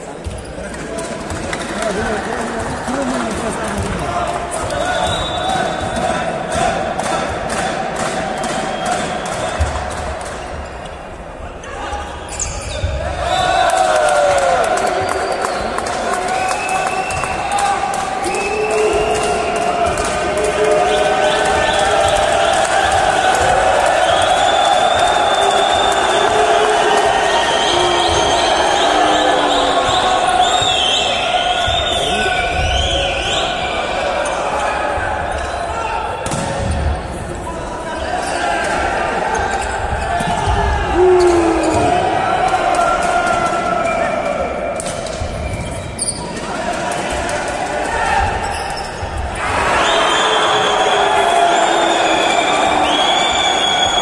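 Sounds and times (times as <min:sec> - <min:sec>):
people shouting and chattering: 0:00.0 - 0:54.0.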